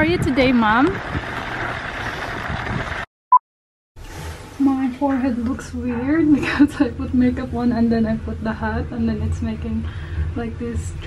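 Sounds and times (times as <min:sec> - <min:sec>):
stroller wheels rolling on snow: 0:00.0 - 0:03.0.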